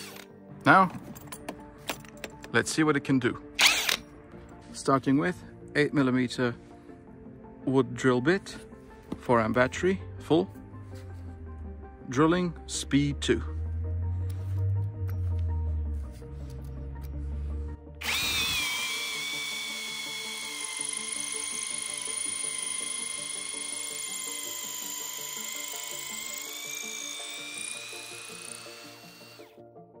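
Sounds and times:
drill boring into log: 0.0 - 0.3, 3.6 - 4.0, 18.0 - 29.5
background music: 0.0 - 30.0.

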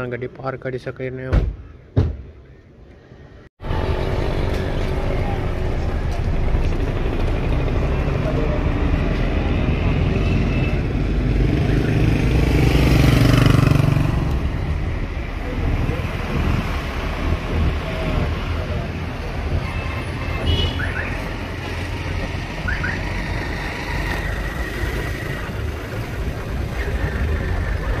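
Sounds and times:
street traffic din: 0.0 - 28.0
engine rumble: 3.6 - 19.6
motorcycles running: 3.7 - 19.6, 21.2 - 28.0.

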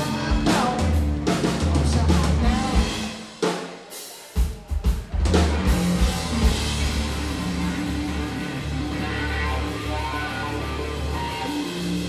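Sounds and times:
instrumental rock band playing: 0.0 - 12.0.

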